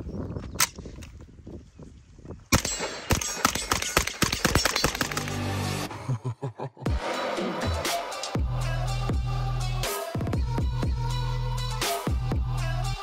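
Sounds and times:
sharp crack: 2.5 - 5.8
rapid gunshots: 2.6 - 5.5.

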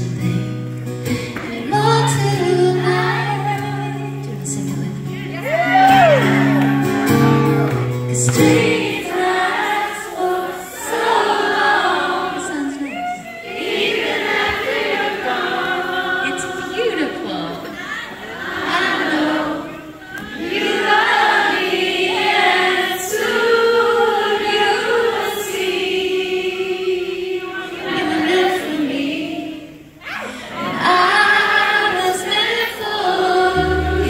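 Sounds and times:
crowd singing pop ballad: 7.6 - 16.9, 17.6 - 29.9, 30.5 - 34.0.

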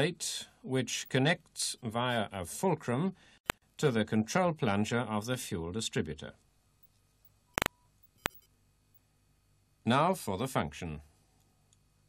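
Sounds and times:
faint brief tone: 7.5 - 8.5.

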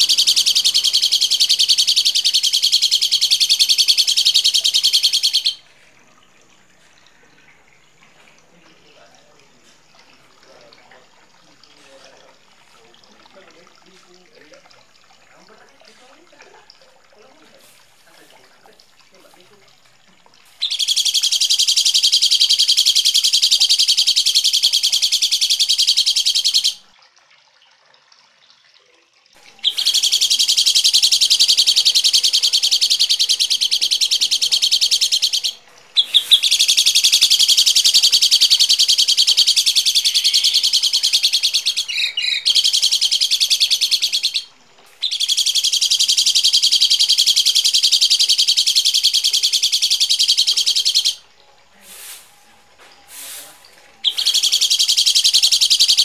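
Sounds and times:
harsh chattering bird calls: 0.0 - 5.7, 20.6 - 26.8, 29.5 - 51.2, 53.2 - 56.0.

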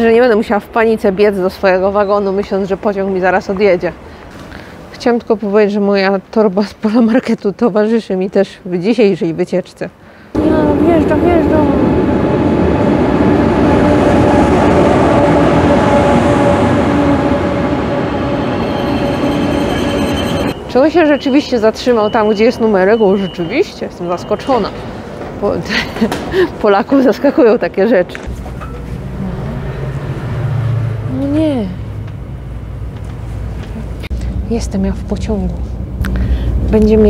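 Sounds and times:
rush of train wheels and air: 10.3 - 20.7, 24.6 - 26.6, 28.2 - 31.2, 35.6 - 37.0
steady hum: 10.4 - 25.0.

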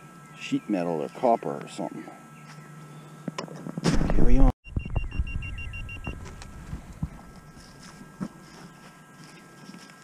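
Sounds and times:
metal detector short beeps: 4.6 - 6.1
scraping and rustling of dirt: 6.1 - 10.0.

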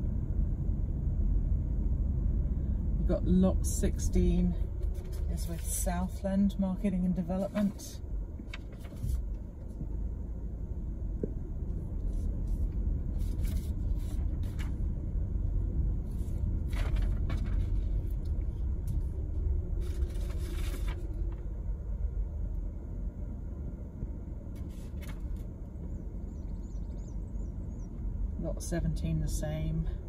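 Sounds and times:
car engine and tyres rumbling: 0.0 - 30.0.

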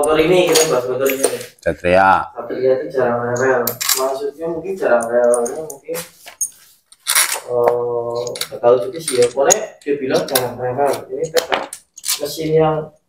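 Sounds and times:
man talking: 0.0 - 6.2, 7.4 - 13.0
metal parts clinking: 3.4 - 4.2, 5.0 - 10.5, 11.1 - 12.5.

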